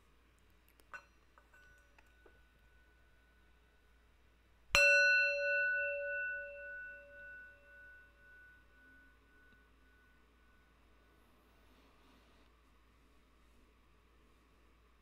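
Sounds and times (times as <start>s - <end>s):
singing bowl ringing: 1.0s - 3.9s, 4.7s - 11.4s.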